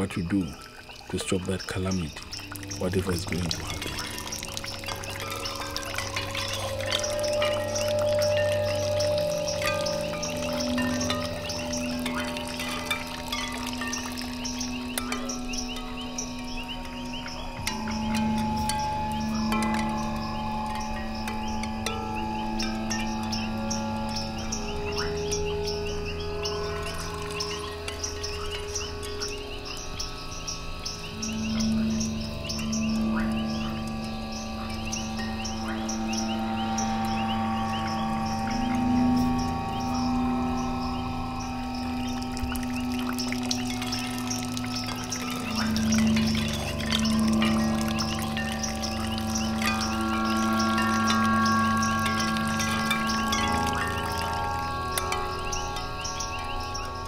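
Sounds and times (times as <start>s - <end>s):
long held low tones: 0.0s - 57.0s
patter of high ticks: 42.0s - 57.0s.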